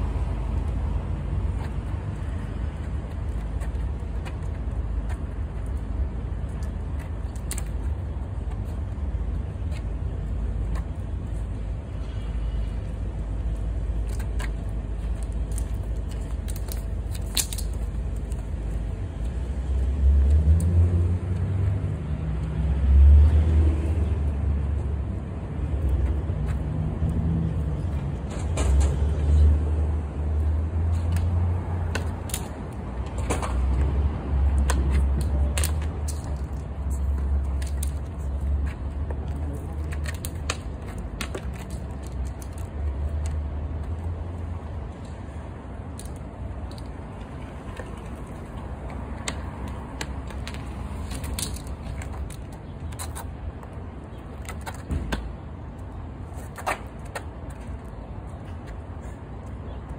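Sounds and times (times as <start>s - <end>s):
street traffic rumbling: 0.0s - 59.9s.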